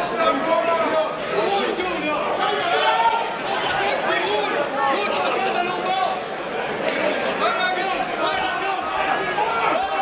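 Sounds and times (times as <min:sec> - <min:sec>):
crowd talking and shouting: 0:00.0 - 0:10.0.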